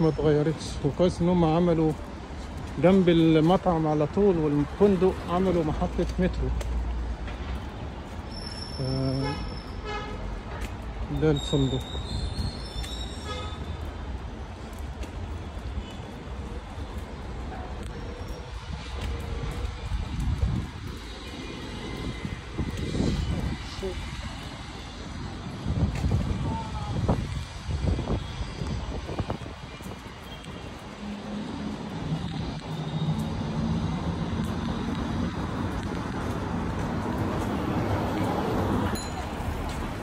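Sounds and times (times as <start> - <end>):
traffic rumble: 0.0 - 40.0.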